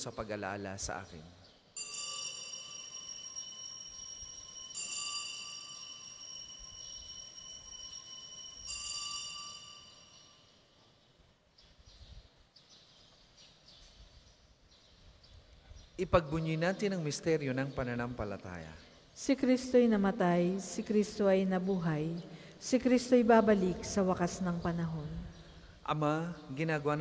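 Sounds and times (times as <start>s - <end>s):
altar bells ringing: 1.8s - 10.6s.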